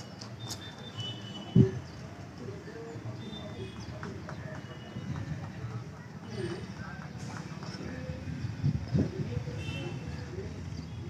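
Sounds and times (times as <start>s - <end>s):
background voices talking: 1.4s - 11.0s.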